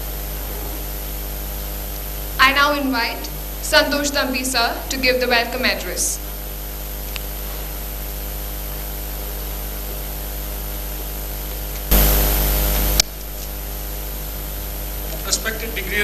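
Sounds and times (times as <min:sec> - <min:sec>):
electrical mains hum and hiss: 0:00.0 - 0:16.0
loud burst of static: 0:00.0 - 0:16.0.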